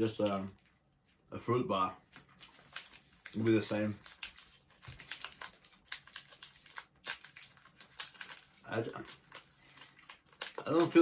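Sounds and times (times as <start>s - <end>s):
plastic wrapper crinkling: 2.1s - 11.0s.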